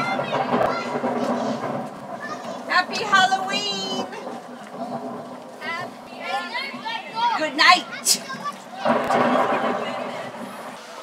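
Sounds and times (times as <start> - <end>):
children chattering: 0.0 - 11.0.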